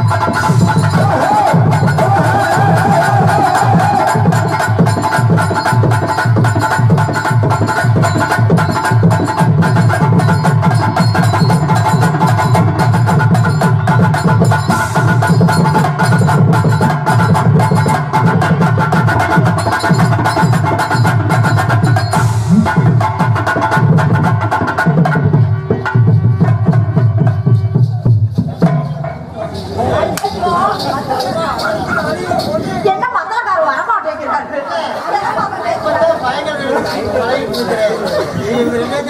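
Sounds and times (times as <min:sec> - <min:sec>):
fast hand drumming: 0:00.0 - 0:29.1
drum kit: 0:00.0 - 0:30.3.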